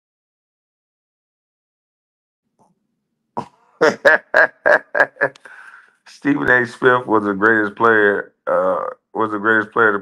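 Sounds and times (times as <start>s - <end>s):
man laughing: 3.8s - 7.3s.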